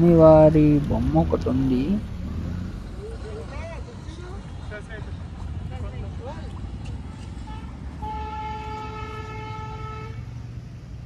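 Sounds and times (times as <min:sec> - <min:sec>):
vehicle horn: 0:07.4 - 0:10.6.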